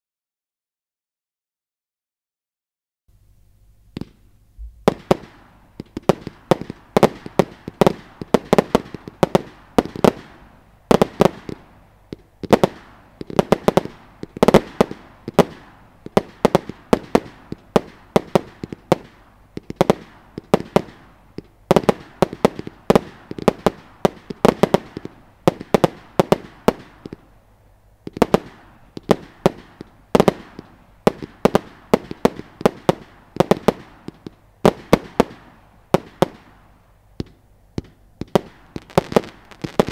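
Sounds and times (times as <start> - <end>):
firework launch thumps and bangs: 37.2 - 39.9.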